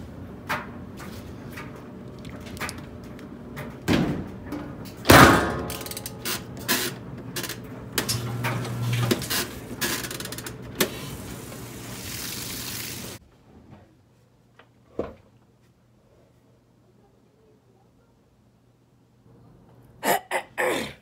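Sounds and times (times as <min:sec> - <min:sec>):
steady hiss of water: 0:10.9 - 0:13.2.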